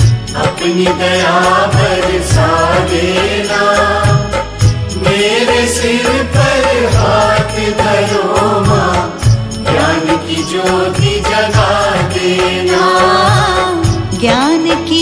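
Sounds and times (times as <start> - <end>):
devotional song over steady beat: 0.0 - 15.0.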